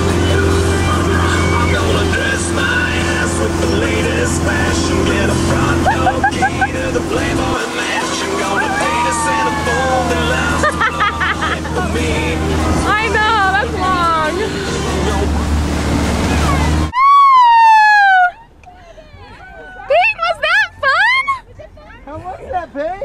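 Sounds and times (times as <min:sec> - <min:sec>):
rushing wake water: 0:00.0 - 0:18.4
boat engine drone: 0:00.0 - 0:23.0
gliding wavering calls: 0:00.2 - 0:02.3.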